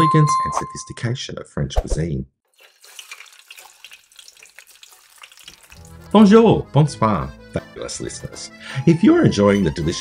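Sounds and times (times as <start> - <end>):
fries sizzling in hot oil: 2.5 - 7.2
music: 5.8 - 10.0.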